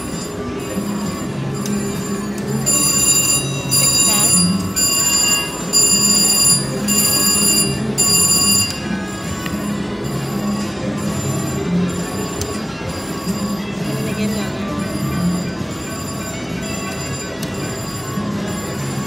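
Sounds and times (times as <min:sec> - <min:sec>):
casino background noise: 0:00.0 - 0:19.0
slot machine win bells: 0:00.0 - 0:19.0.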